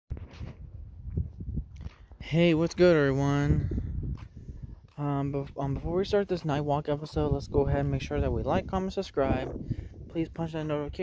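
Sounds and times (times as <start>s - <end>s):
wind rumble on microphone: 0.1s - 11.0s.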